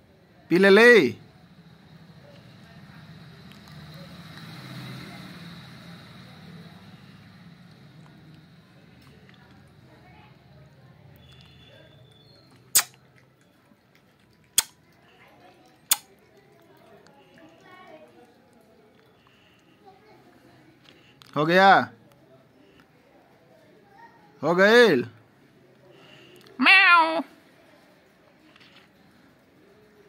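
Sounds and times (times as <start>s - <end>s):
cat lapping milk: 11.2s - 20.0s
loud sharp click: 12.7s - 13.0s.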